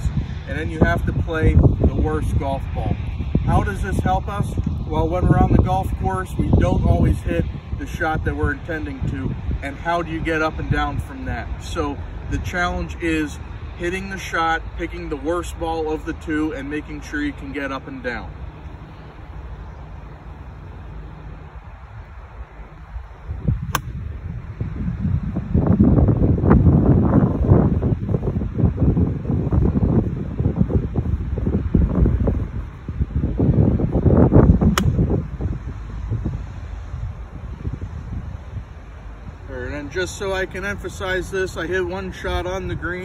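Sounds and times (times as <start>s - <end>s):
wind buffeting microphone: 0.0s - 43.0s
golf club striking ball: 23.6s - 24.2s, 34.7s - 35.2s.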